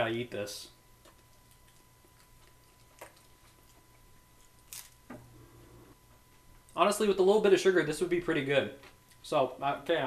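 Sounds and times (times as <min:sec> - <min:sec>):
chewing bread: 0:01.0 - 0:04.9.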